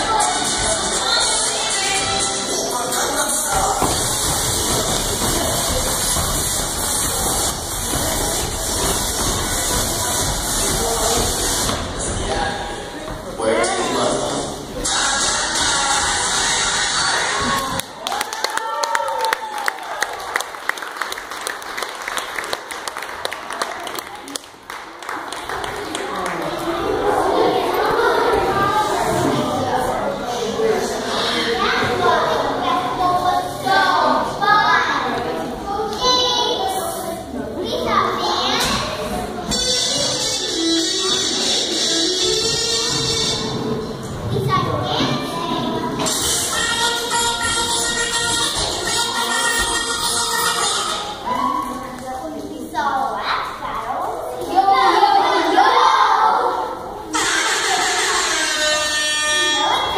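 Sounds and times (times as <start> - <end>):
children chattering in echoing hall: 0.0 - 59.9
children shouting and cheering: 14.8 - 20.7, 25.3 - 29.7, 44.4 - 52.0, 54.3 - 59.9
applause: 17.8 - 26.6.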